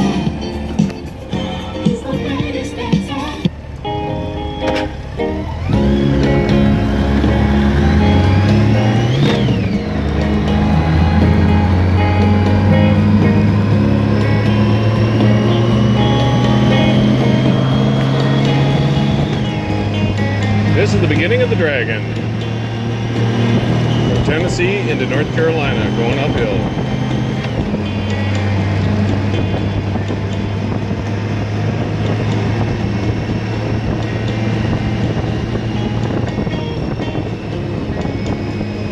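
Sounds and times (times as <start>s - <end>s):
motorcycle engine: 0.0s - 38.9s
music from motorcycle stereo: 0.0s - 38.9s
wind noise: 5.6s - 38.9s.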